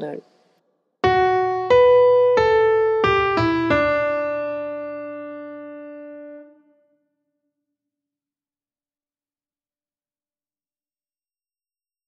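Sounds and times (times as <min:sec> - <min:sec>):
piano notes stepping downward: 0:01.0 - 0:06.7.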